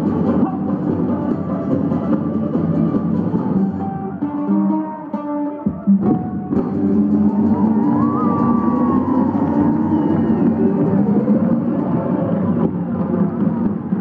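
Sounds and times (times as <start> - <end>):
folk-rock band playing: 0.0 - 14.0
drums pounding: 5.7 - 14.0.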